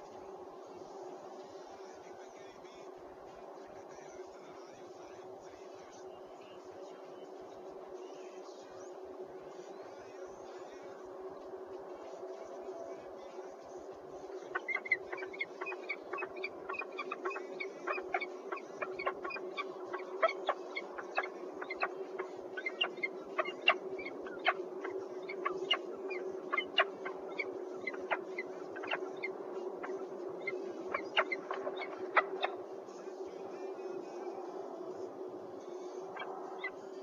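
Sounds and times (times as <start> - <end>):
steady low hum: 0.0 - 37.0
falcons calling: 12.0 - 37.0.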